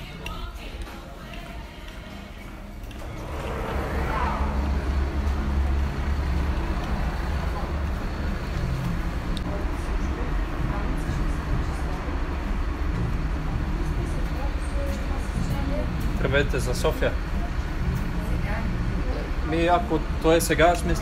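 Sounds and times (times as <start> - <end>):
traffic noise: 1.1 - 21.0
bus engine rumble: 2.6 - 21.0.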